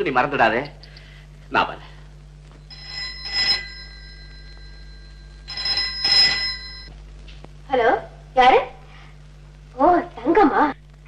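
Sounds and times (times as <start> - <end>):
desk telephone bell ringing: 2.6 - 6.9.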